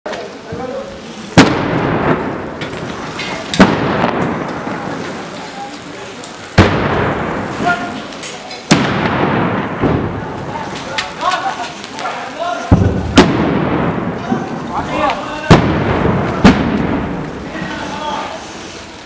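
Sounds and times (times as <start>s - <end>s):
loud explosions echoing: 1.3s - 5.3s, 6.5s - 8.0s, 8.7s - 10.7s, 12.7s - 17.8s.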